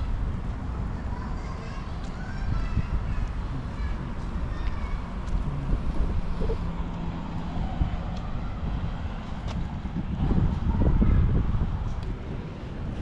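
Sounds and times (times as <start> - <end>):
road traffic hum: 0.0 - 13.0
wind buffeting microphone: 0.0 - 13.0.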